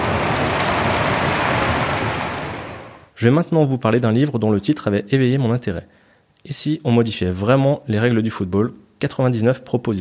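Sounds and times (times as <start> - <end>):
loud rushing noise: 0.0 - 3.1.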